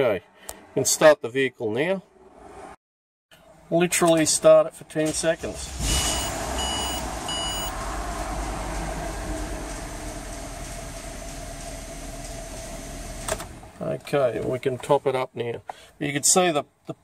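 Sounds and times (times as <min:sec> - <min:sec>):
car engine idling: 0:05.4 - 0:13.8
short electronic chimes: 0:05.9 - 0:07.7.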